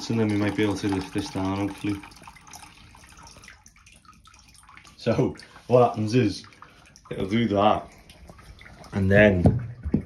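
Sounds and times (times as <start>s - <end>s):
water trickling into bucket: 0.0s - 10.0s.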